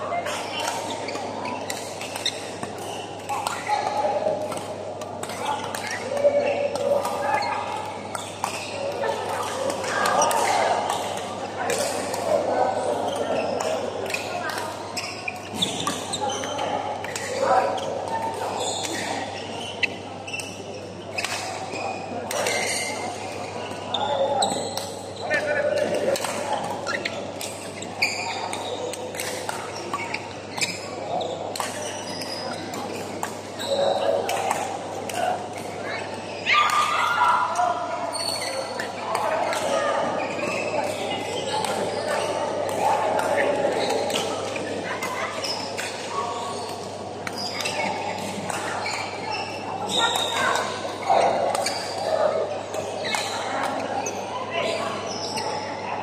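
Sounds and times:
chatter of players and onlookers: 0.0s - 56.0s
rackets hitting shuttlecock: 0.2s - 12.5s, 13.6s - 17.4s, 25.8s - 30.8s, 31.5s - 35.8s.

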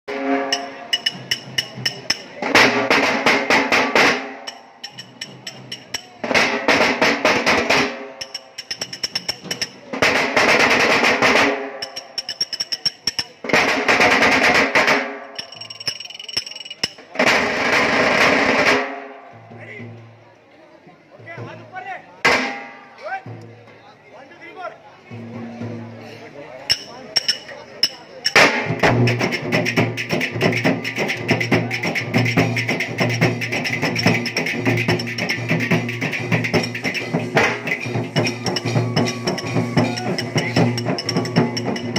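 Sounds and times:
drums beaten with sticks: 0.1s - 20.2s, 21.2s - 23.8s, 25.1s - 26.0s, 26.7s - 41.9s.

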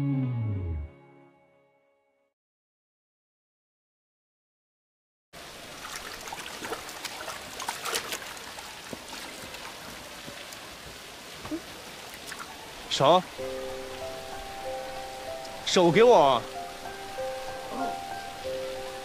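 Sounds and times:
water trickling and splashing: 5.4s - 19.0s.

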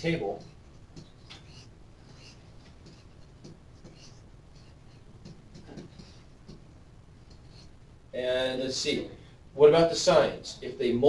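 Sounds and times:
stylus tapping and scratching: 0.0s - 7.9s.

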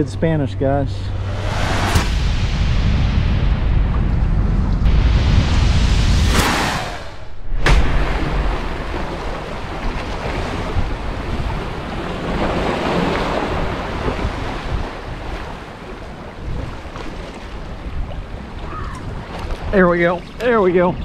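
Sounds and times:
wind rumbling on microphone: 1.0s - 21.0s
surf washing against rocks: 6.4s - 20.9s.

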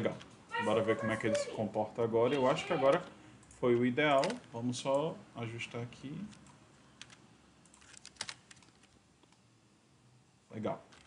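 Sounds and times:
computer keyboard keystrokes: 6.3s - 9.4s.

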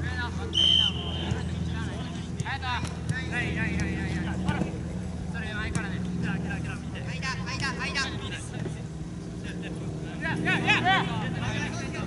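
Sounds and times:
low mechanical hum: 0.0s - 12.0s
players shouting: 0.5s - 4.7s.

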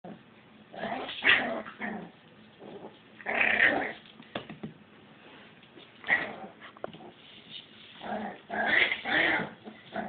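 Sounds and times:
puppy growling: 0.0s - 4.0s, 6.0s - 7.2s, 8.0s - 10.0s.

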